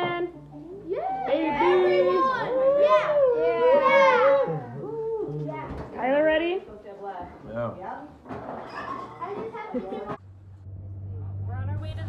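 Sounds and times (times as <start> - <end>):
chatter of adults and children: 0.6 - 10.2
child's voice: 9.1 - 9.9.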